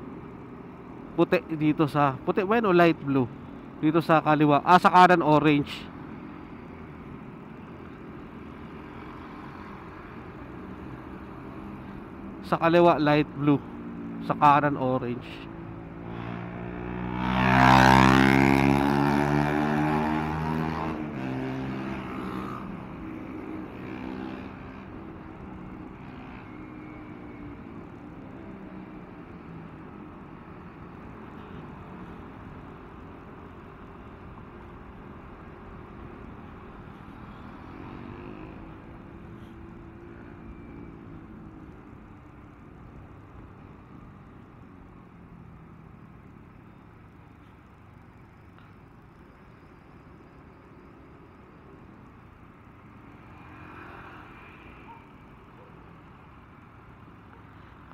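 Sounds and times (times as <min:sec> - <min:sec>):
road noise: 0:00.0 - 0:57.9.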